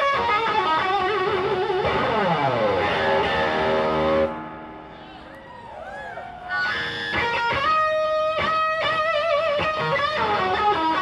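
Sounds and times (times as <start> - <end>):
amplified electric guitar: 0.0 - 5.5, 6.4 - 11.0.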